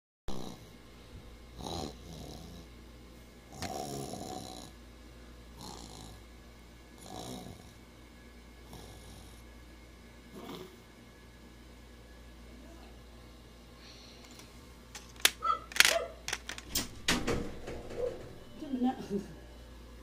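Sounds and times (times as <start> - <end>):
person snoring: 0.3 - 0.7, 3.6 - 4.7, 7.0 - 7.8.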